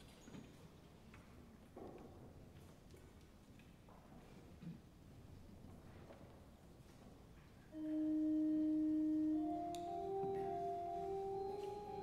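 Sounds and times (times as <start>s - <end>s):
pipe organ soft held chord: 7.8s - 12.0s.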